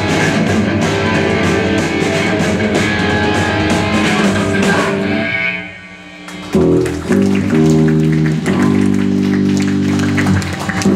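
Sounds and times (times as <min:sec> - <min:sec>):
electric guitar and bass chords: 0:00.0 - 0:10.9.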